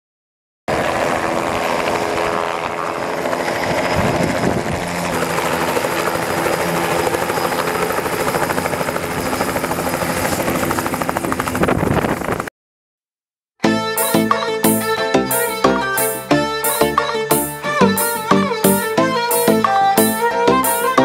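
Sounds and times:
helicopter engine hum: 0.7 - 12.5, 13.9 - 21.0
helicopter rotor blades chopping: 0.7 - 12.5.

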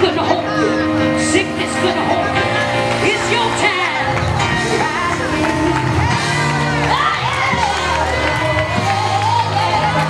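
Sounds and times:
congregation singing and shouting: 0.0 - 10.0
worship music with held chords: 0.0 - 10.0.

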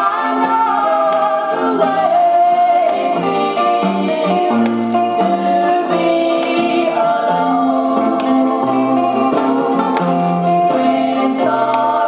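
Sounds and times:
gospel singing from vinyl record: 0.0 - 12.0.

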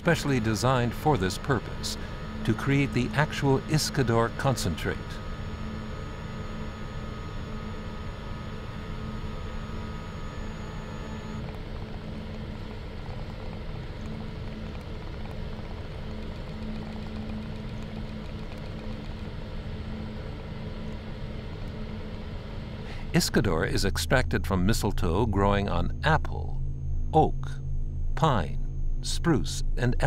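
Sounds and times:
machine humming: 0.0 - 30.0.

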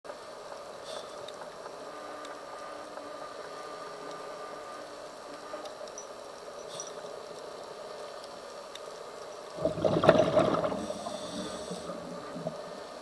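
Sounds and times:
faint clicks: 0.1 - 9.6
faint hum: 0.1 - 13.0
underwater hiss: 9.6 - 13.0.

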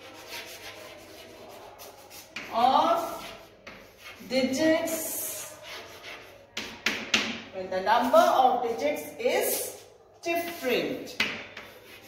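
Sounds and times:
chalk scratching on a blackboard: 0.0 - 7.4, 10.5 - 12.0.

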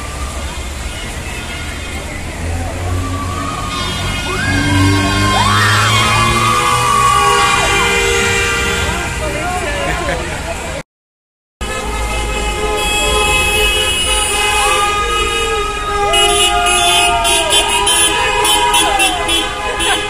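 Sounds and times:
cars passing on wet road: 0.0 - 10.8, 11.6 - 20.0
people shouting: 1.2 - 9.9, 15.8 - 20.0.

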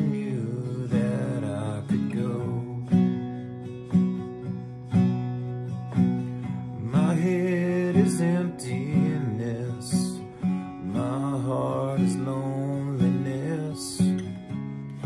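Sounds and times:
acoustic guitar folk accompaniment: 0.0 - 15.0.

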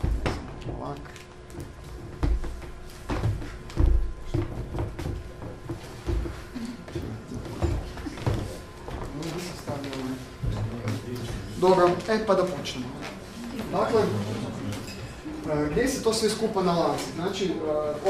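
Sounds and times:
footsteps and knocks: 0.0 - 13.2
quiet voices murmuring: 6.4 - 18.0.

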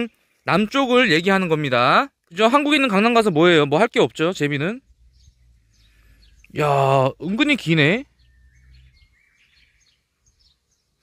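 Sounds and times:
outdoor background noise: 0.0 - 11.0
faint bird chirps: 3.0 - 11.0.

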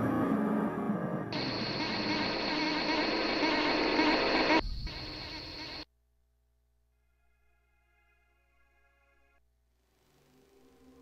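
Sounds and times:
steady high tone: 1.4 - 5.9.

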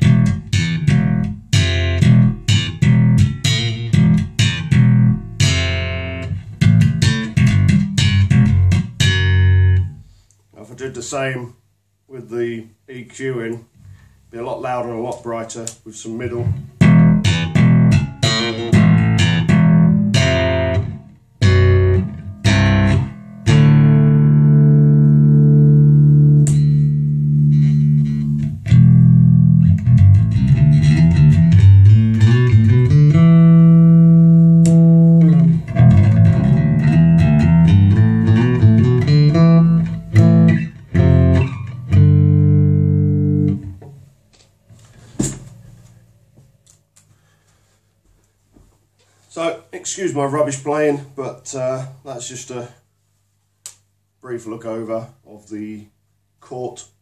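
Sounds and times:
bass guitar through amplifier: 0.0 - 11.1, 13.8 - 47.6.

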